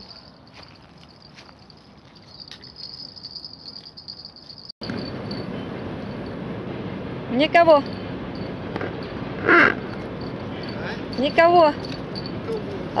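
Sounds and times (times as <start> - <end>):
crickets chirring: 0.0 - 6.5, 7.8 - 12.9.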